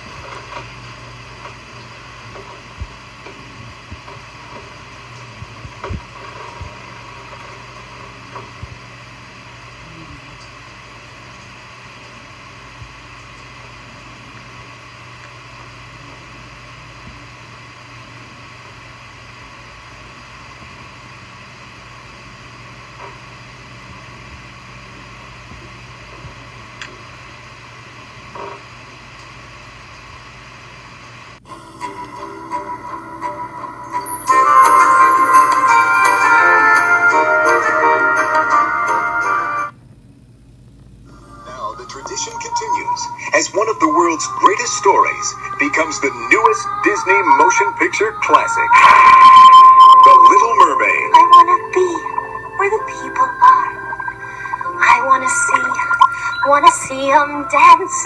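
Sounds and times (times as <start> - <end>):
tape hiss and hum: 0.0 - 58.0.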